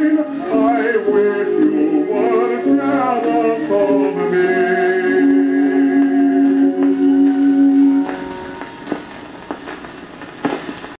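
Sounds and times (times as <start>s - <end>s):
dance band chord on record: 0.0s - 11.0s
record surface hiss and crackle: 0.0s - 11.0s.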